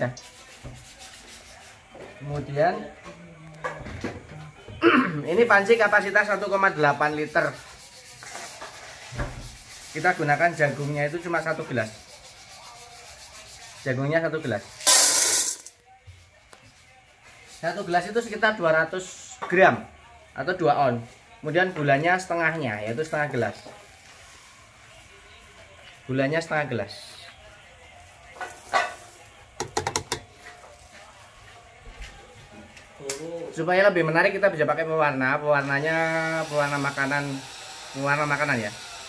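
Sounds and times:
popcorn kernels rattling into pot: 0:14.8 - 0:15.8.

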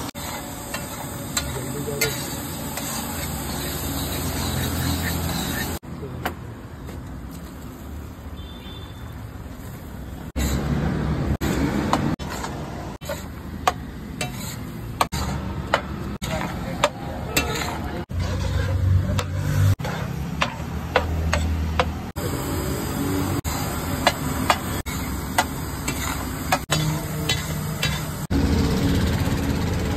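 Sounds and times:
food sizzling: 0:00.0 - 0:05.8, 0:09.2 - 0:29.8
metal spatula scraping a griddle: 0:00.0 - 0:05.8, 0:10.3 - 0:10.8, 0:11.4 - 0:21.9, 0:23.4 - 0:28.3.

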